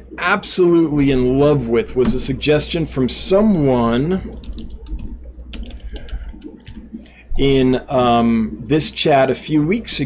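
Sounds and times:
typing on computer keyboard: 4.4 - 6.8.

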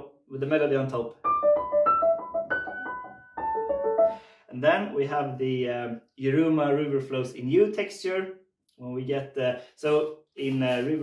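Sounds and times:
upright piano broken chords: 1.1 - 4.3.

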